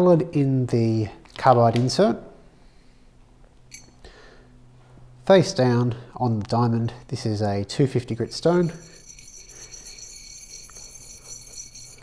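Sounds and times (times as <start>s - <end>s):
metal rasping on sharpening stone: 8.6s - 12.0s.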